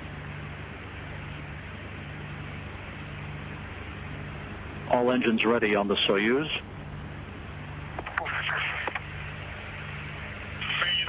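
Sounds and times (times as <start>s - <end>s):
radio hiss and hum: 0.0s - 11.0s.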